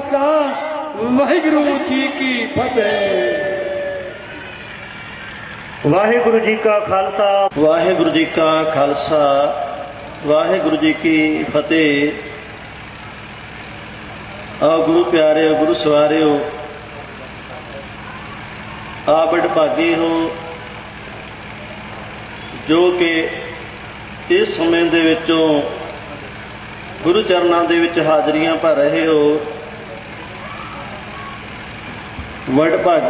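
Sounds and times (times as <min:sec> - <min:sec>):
man speaking over loudspeaker: 0:00.0 - 0:04.3, 0:05.8 - 0:12.5, 0:14.6 - 0:17.9, 0:19.0 - 0:20.7, 0:22.6 - 0:26.3, 0:27.0 - 0:29.7, 0:32.4 - 0:33.0
sound system hum and hiss: 0:00.0 - 0:33.0.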